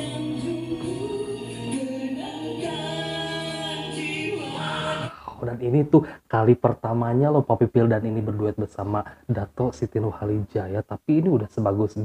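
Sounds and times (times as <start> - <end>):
pop ballad duet singing: 0.0 - 5.4.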